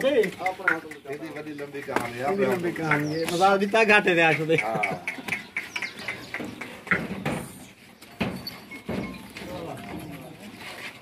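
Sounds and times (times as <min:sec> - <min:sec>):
people's voices: 0:00.0 - 0:07.8.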